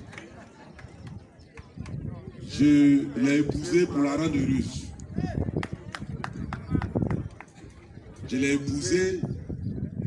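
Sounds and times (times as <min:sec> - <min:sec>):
low murmuring voices: 0:00.0 - 0:10.0.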